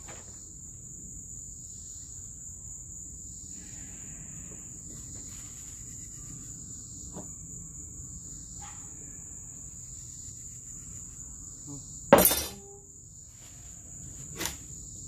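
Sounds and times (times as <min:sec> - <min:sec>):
crickets chirring: 0:00.0 - 0:15.0.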